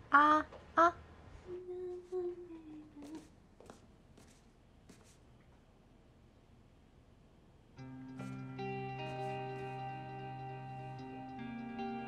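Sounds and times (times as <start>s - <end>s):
woman humming softly: 1.5s - 3.3s.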